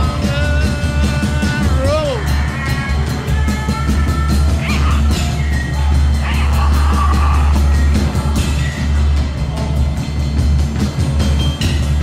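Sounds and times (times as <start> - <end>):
vocal cry: 0.0 - 8.7
drum strokes: 0.0 - 12.0
loud psychedelic rock music: 0.0 - 12.0
noisy guitars: 0.0 - 12.0.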